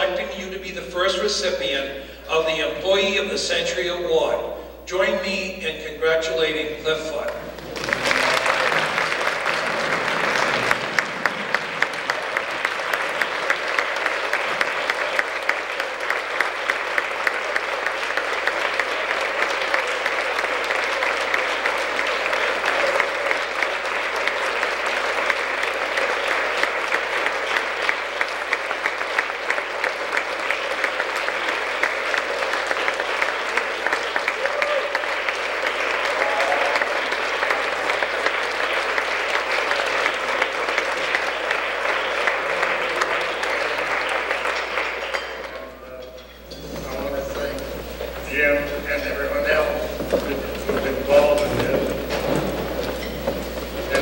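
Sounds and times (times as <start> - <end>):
audience clapping: 0.0 - 54.0.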